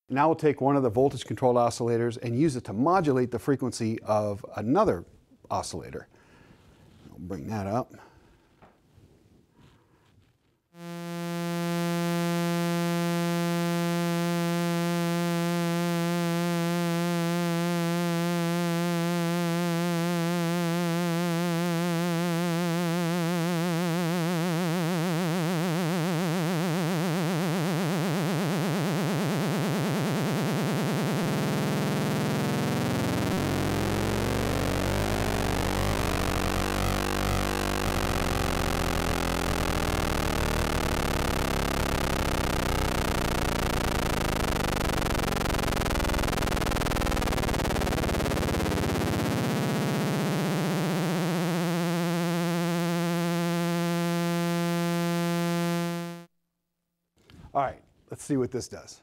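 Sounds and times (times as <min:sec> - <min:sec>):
frequency-modulated synthesizer tone: 0:10.8 - 0:56.3.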